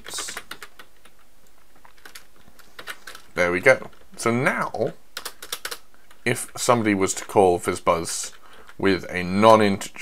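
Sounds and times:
computer keyboard keystrokes: 0:00.0 - 0:03.3, 0:05.2 - 0:06.2.

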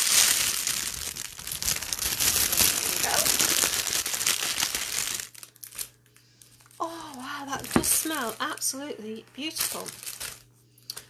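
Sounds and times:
wrapping crinkling and rustling: 0:00.0 - 0:11.0.

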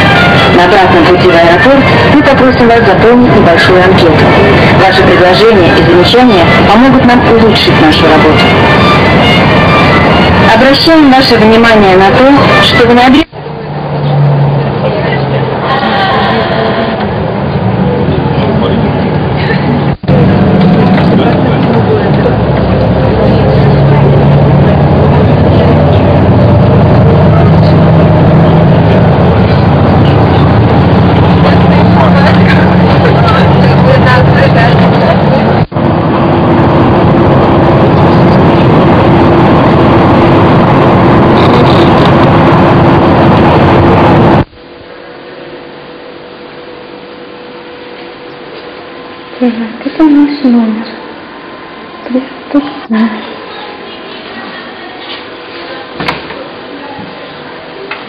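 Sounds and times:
coach engine and road drone: 0:00.0 - 0:58.0.

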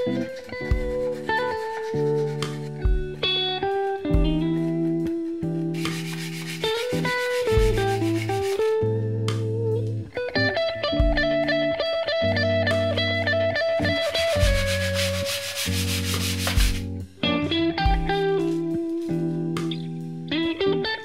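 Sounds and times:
clean electric guitar melody: 0:00.0 - 0:21.0
low beats: 0:02.7 - 0:03.2, 0:05.8 - 0:08.6, 0:13.9 - 0:17.1
bass line: 0:14.0 - 0:17.1.

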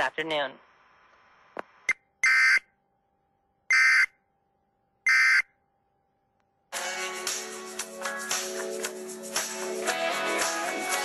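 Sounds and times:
music: 0:06.7 - 0:11.0.

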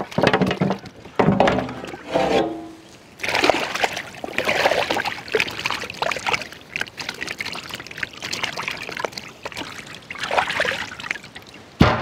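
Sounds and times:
water splashing in steel basin: 0:00.0 - 0:11.6.

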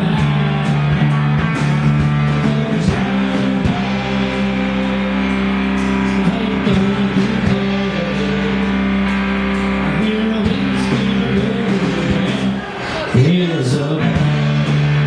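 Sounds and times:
acoustic guitar: 0:00.0 - 0:15.0
bass guitar: 0:00.0 - 0:15.0
electric guitars: 0:00.0 - 0:15.0.

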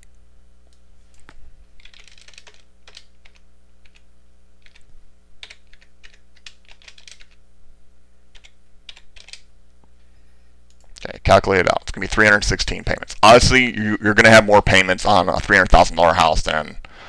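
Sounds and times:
low electrical hum: 0:00.0 - 0:17.0
keyboard typing: 0:01.1 - 0:07.4, 0:08.3 - 0:09.5.

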